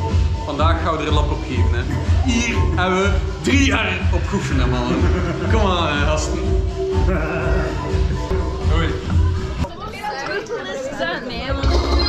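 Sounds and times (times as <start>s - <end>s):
background music with heavy bass: 0.0s - 9.7s, 11.5s - 12.0s
people chatting: 0.5s - 6.5s, 7.1s - 12.0s.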